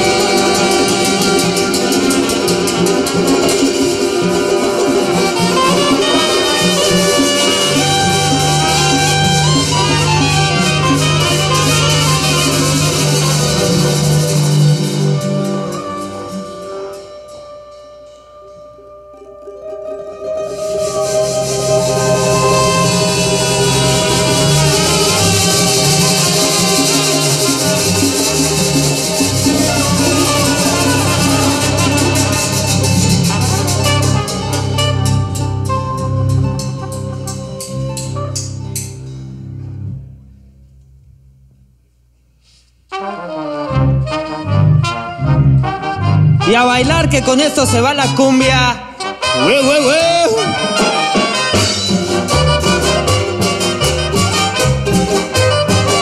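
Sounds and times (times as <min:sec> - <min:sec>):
pulsing bass line: 0:00.0 - 0:15.8, 0:20.8 - 0:41.5, 0:44.0 - 0:48.7
quick percussion strikes: 0:00.0 - 0:39.3, 0:46.4 - 0:56.0
live cumbia band: 0:00.0 - 0:40.1, 0:42.4 - 0:56.0.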